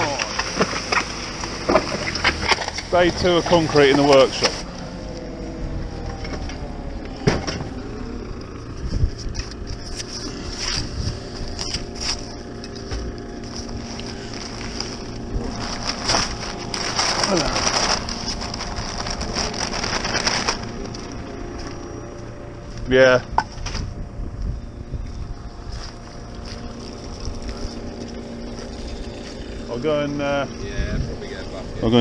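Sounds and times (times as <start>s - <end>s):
diesel engine running: 0.0s - 32.0s
paper sacks rustling and knocking: 11.6s - 21.6s.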